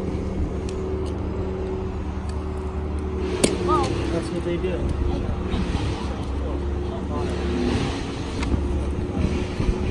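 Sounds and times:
low outdoor rumble: 0.0s - 9.9s.

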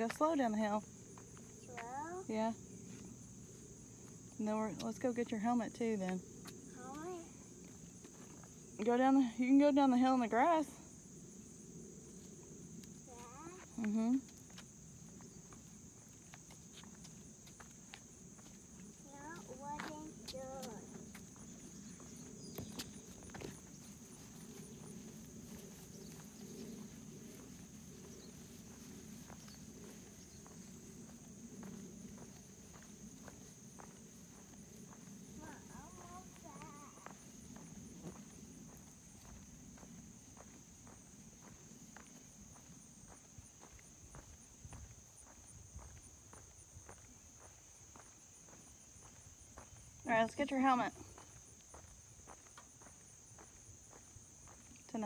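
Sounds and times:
soft ticking footsteps: 2.9s - 9.9s, 12.8s - 55.0s.

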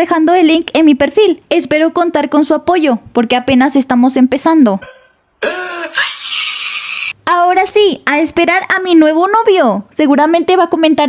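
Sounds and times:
man wailing and crying: 5.4s - 7.1s.

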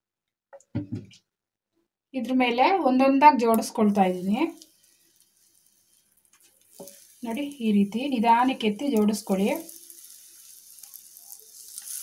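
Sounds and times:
banana slices sizzling in oil: 3.4s - 12.0s.

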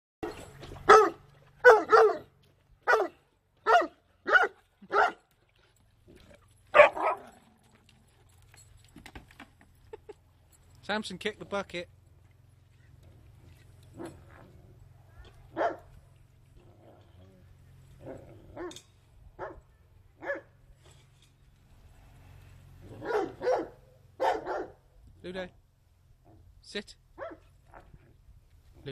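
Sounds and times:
dog barking loudly: 0.2s - 5.2s, 6.7s - 7.3s, 15.5s - 15.9s, 20.2s - 20.5s, 22.9s - 24.8s, 27.2s - 27.4s.

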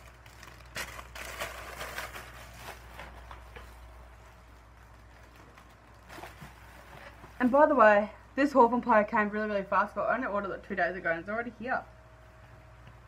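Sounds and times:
package rustling: 0.0s - 7.7s
steady low hum: 0.0s - 13.0s.

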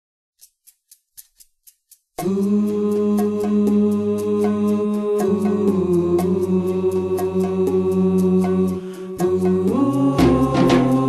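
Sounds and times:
percussive count-in ticks: 0.4s - 11.0s.

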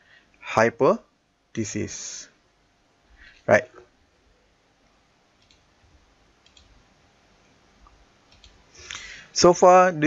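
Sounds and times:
faint mouse clicks: 5.4s - 5.7s, 6.4s - 6.8s, 7.8s - 9.1s.

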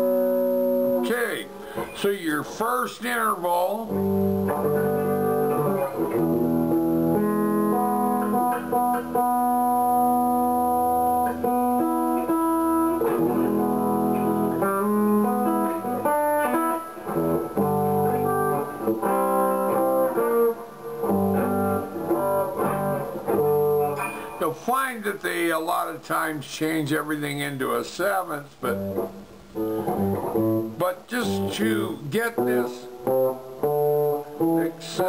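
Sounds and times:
electric guitar chords ringing: 0.0s - 26.5s, 28.6s - 35.0s.

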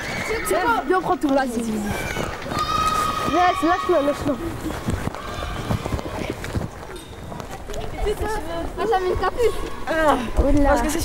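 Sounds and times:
children's footsteps on pavement: 0.0s - 11.0s.

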